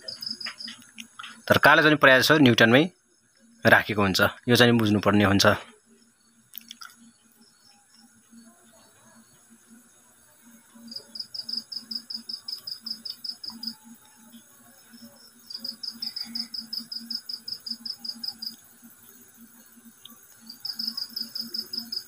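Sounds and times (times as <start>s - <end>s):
cricket chirping: 0.0s - 22.0s.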